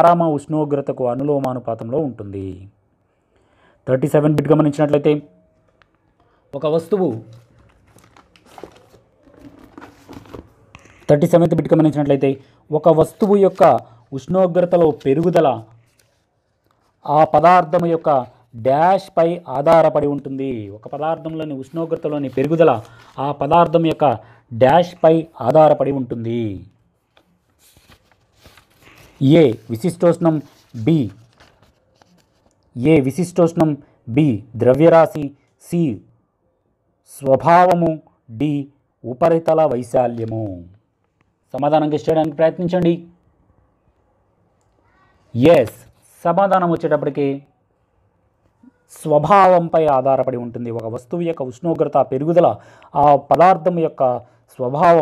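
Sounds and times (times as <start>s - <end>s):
person speaking: 6.4s - 36.1s, 37.1s - 40.8s, 41.5s - 43.2s, 44.8s - 47.6s, 48.6s - 55.0s
faint rustling crackles: 27.0s - 32.7s.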